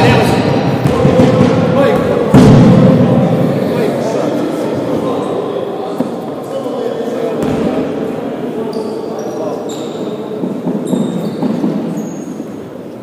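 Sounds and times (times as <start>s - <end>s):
indistinct echoing voices: 0.0s - 13.0s.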